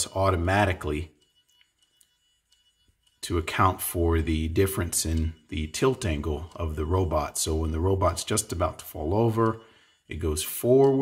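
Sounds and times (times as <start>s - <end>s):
person speaking: 0.0s - 1.3s, 3.2s - 11.0s.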